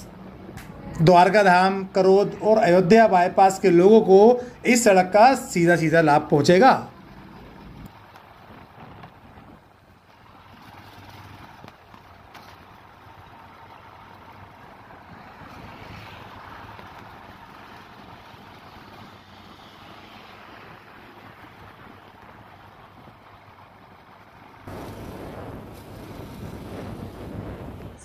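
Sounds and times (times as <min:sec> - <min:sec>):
road and wind noise: 0:00.0 - 0:28.0.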